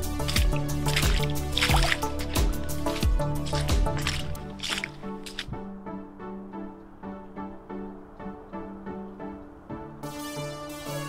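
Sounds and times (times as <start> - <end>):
footsteps squelching in mud: 0.0 - 5.7
background music: 0.0 - 11.0.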